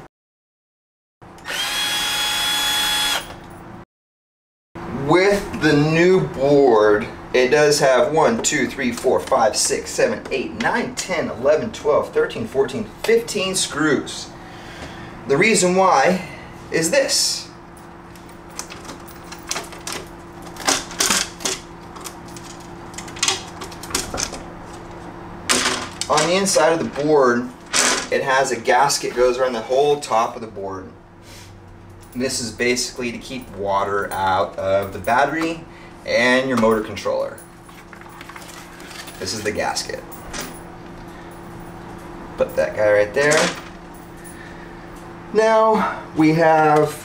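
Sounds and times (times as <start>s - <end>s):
faint steady hum: 4.8s - 47.0s.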